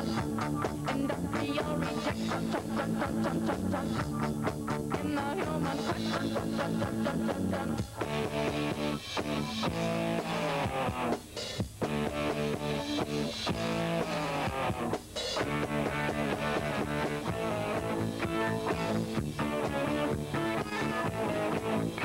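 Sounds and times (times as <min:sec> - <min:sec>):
rock band with guitars: 0:00.0 - 0:22.0.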